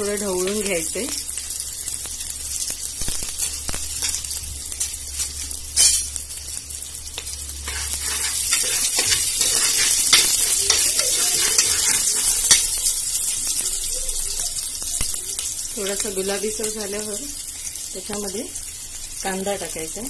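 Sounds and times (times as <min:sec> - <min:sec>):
spices sizzling in hot ghee: 0:00.0 - 0:20.0
metal spoon stirring: 0:07.6 - 0:13.1.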